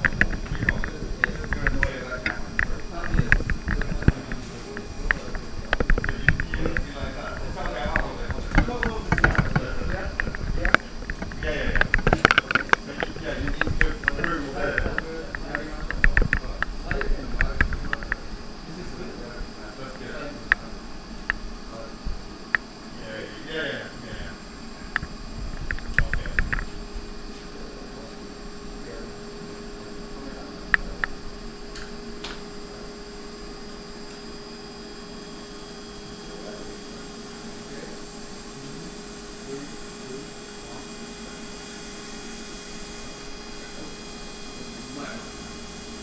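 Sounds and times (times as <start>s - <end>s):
equipment clicks and knocks: 0.0s - 18.2s
indistinct conversation: 0.0s - 45.6s.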